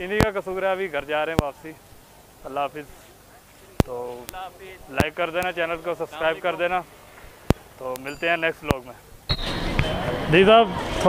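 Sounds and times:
man speaking: 0.0 - 1.8, 2.4 - 7.0, 7.8 - 9.1
street background noise: 0.0 - 11.0.

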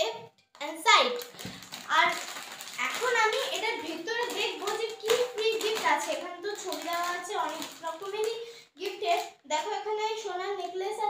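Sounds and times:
child's voice: 0.0 - 11.0
plastic packets rustling: 0.5 - 11.0.

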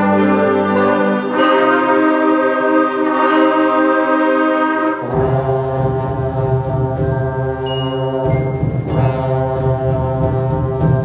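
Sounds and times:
concert band sustained chords: 0.0 - 11.0.

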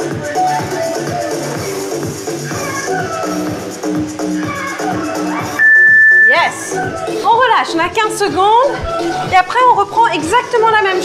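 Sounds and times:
electronic dance music: 3.6 - 7.4
high-pitched electronic beep: 5.6 - 6.8.

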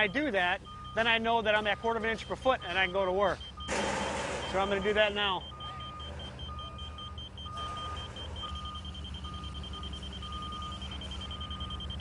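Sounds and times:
fast high-pitched beeping: 0.0 - 12.0
lower beep: 2.6 - 12.0.

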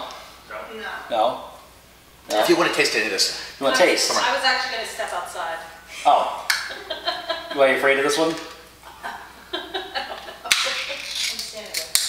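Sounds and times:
foil crinkly tearing: 10.5 - 12.0
foil lid snapping: 10.5 - 12.0
foil seal popping: 10.5 - 12.0.

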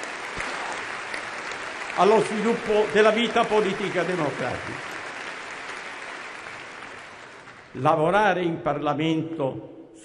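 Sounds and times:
large crowd applauding: 0.0 - 7.8.

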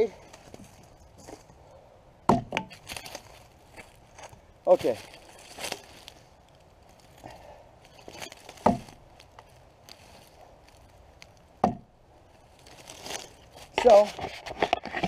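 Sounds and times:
axe chopping into log: 2.3 - 2.8, 8.6 - 9.0, 11.6 - 11.9.

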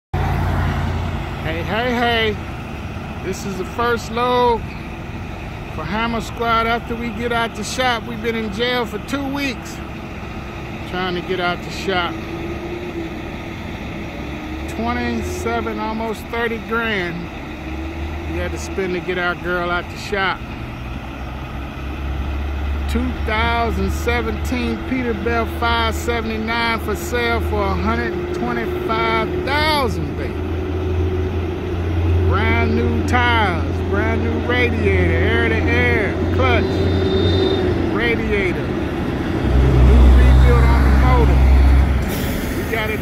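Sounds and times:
diesel truck engine idling: 0.2 - 43.0.

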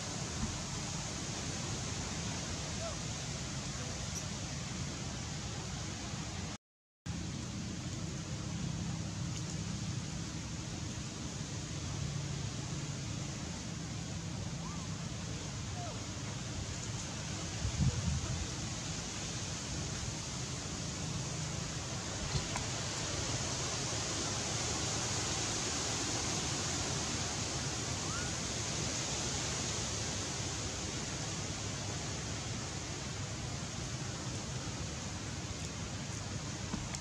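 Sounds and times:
outdoor background hiss: 0.0 - 37.0.

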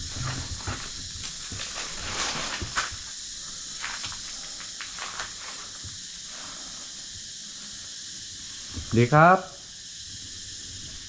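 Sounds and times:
wood debris crackling: 0.0 - 5.6
high-pitched hiss: 0.0 - 11.0
footsteps on dry leaves: 1.3 - 3.1.

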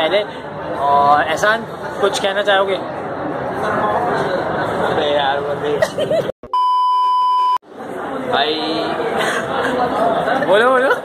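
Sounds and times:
censor bleep tone: 6.4 - 7.6.

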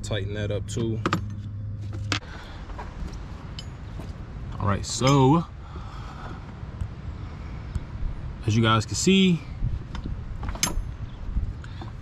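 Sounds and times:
steady low hum: 0.0 - 12.0
metal tools clinking: 3.0 - 4.1, 10.5 - 11.0.

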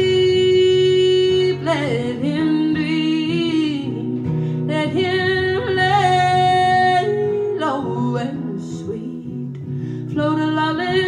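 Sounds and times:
strummed acoustic guitar: 0.0 - 11.0
woman singing long held notes: 0.0 - 11.0.

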